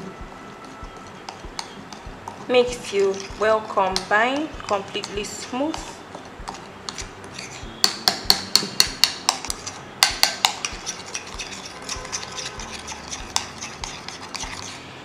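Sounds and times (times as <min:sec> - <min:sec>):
metal spoon clinking in glass bowl: 0:06.5 - 0:14.6.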